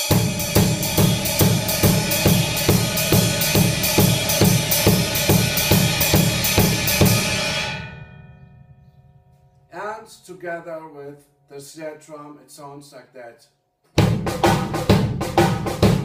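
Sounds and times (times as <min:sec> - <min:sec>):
bass drum beat: 0:00.0 - 0:07.5, 0:14.0 - 0:16.0
ride cymbal shuffle pattern: 0:00.0 - 0:07.9.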